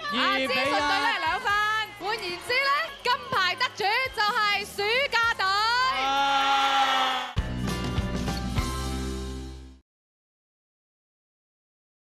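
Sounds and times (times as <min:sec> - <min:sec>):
music: 0:00.0 - 0:06.4, 0:07.3 - 0:09.8
high-pitched whooping and cheering: 0:05.7 - 0:07.4.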